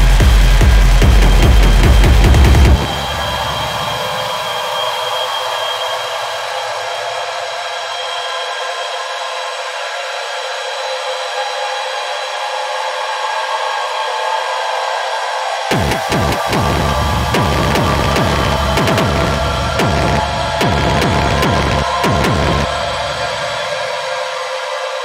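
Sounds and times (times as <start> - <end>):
kick drum and bass: 0.0 - 4.2, 15.7 - 23.7
techno music: 0.0 - 5.1, 15.7 - 24.2
noisy drone: 0.0 - 8.6, 15.4 - 25.0.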